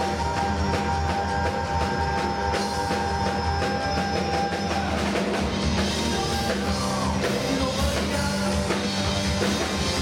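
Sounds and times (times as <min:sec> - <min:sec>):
bass guitar: 0:00.0 - 0:10.0
drum kit beat: 0:00.0 - 0:10.0
electric guitar: 0:00.0 - 0:10.0
keyboard: 0:00.0 - 0:10.0.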